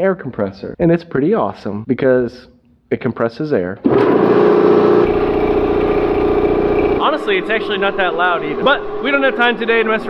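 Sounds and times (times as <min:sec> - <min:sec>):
electric air compressor running: 0:03.8 - 0:10.0.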